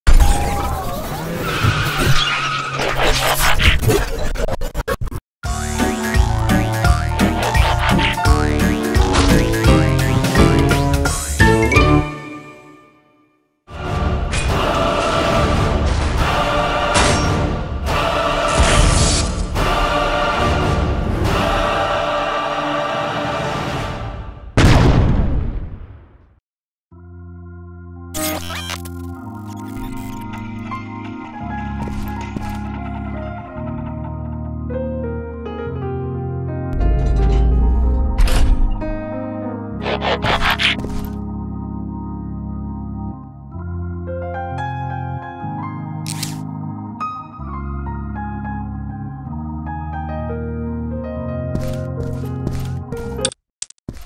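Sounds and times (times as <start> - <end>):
music: 5.4 - 24.6, 26.9 - 53.3
sudden loud blast: 24.6 - 26.1.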